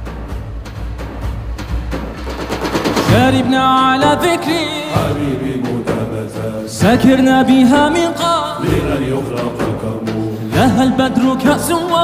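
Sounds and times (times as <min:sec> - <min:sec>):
rapid drum roll: 0:00.0 - 0:12.0.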